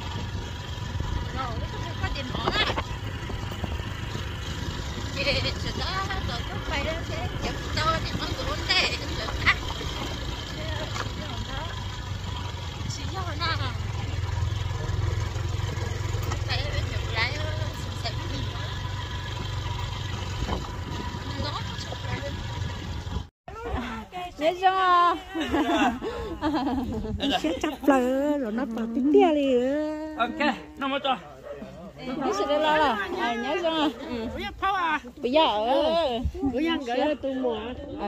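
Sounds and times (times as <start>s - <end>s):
steady low rumble: 0.0s - 23.3s
engine idling: 0.0s - 23.9s.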